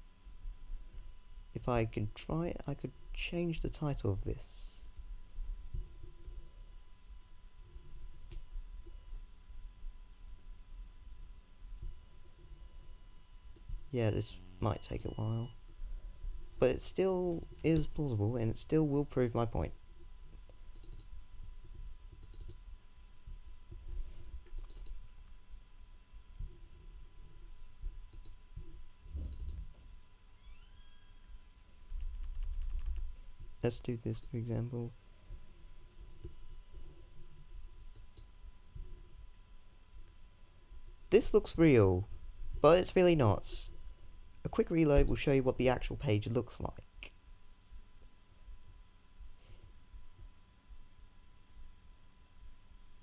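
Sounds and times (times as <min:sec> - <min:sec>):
low steady hum: 0:00.0 - 0:53.0
computer mouse click: 0:20.7 - 0:21.1, 0:22.2 - 0:22.6, 0:24.4 - 0:25.0, 0:27.4 - 0:28.4, 0:29.2 - 0:29.6.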